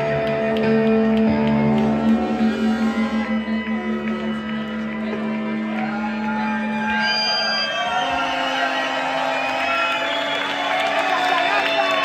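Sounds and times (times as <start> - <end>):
low steady drone: 0.0 - 6.2
brass band with rock band: 0.0 - 10.9
crowd whooping and cheering: 1.4 - 12.0.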